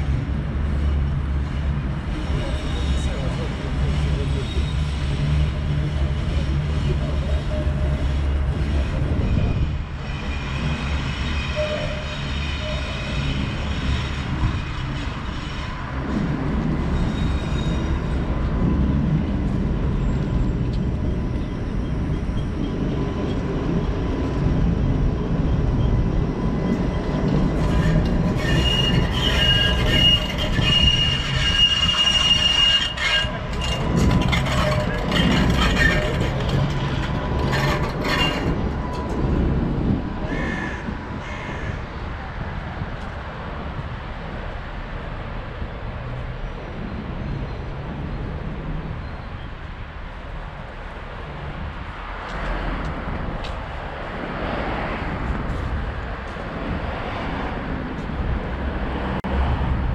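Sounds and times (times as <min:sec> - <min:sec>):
trams rumbling on track: 0:00.0 - 0:59.9
tram wheel squeal: 0:00.7 - 0:41.9, 0:46.1 - 0:51.1.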